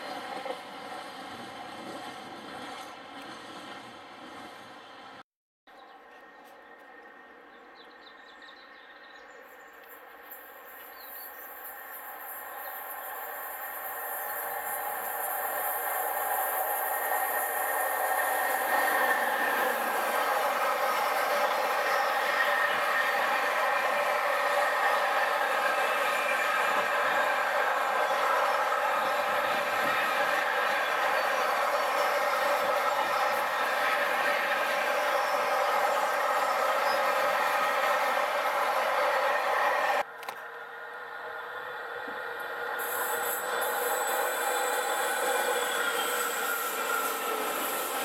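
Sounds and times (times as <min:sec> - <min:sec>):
freight train passing: 0:00.0 - 0:05.2, 0:06.0 - 0:48.0.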